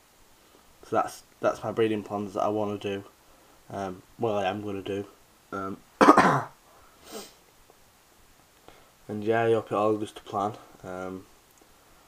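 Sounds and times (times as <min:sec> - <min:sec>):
man coughing: 0:06.0 - 0:06.6
short breath: 0:06.7 - 0:07.4.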